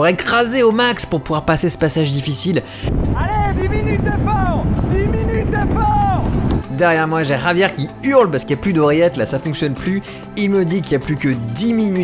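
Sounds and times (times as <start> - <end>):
music: 0.0 - 12.0
heavy wind: 2.8 - 6.8
road rumble: 2.9 - 6.8
man yelling: 3.2 - 6.3.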